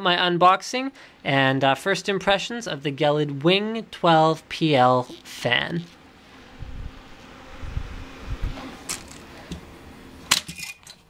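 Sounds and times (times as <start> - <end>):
soft low bumps: 6.2 - 9.7.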